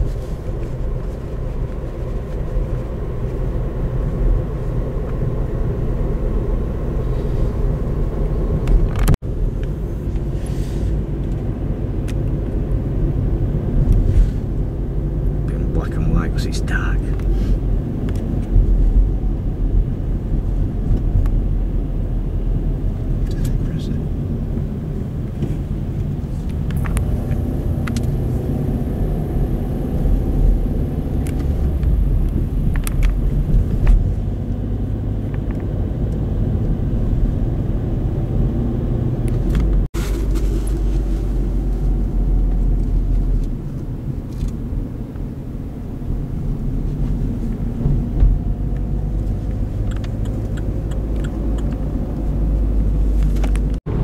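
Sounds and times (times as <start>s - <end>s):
car driving heard from cabin: 0.0s - 54.0s.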